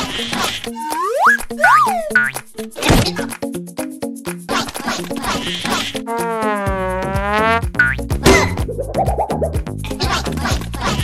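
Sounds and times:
quick upward zip: 6.1 - 7.6
cartoon boing tone: 6.1 - 9.4
background music with low beat: 6.2 - 10.3.

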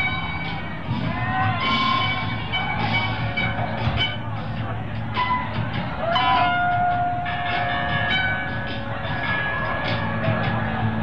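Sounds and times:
electric guitar feedback tones: 5.2 - 10.2.

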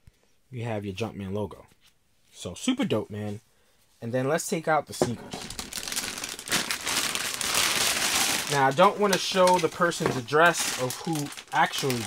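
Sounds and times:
plastic bag crinkling: 5.2 - 12.0.

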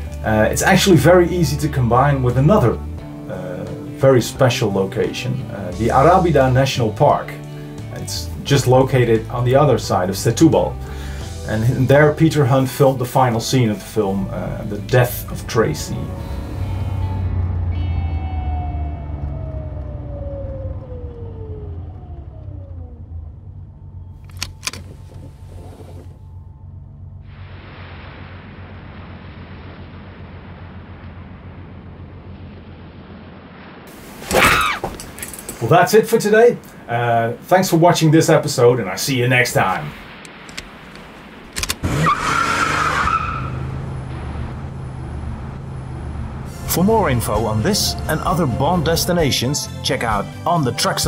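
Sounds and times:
car engine running: 14.6 - 33.8, 40.9 - 50.4
rifle handling clicks: 24.2 - 25.3, 41.6 - 41.8
sharp clicks: 24.2 - 26.1, 40.2 - 41.9
tyres skidding on sand: 33.9 - 36.4, 41.8 - 48.7.

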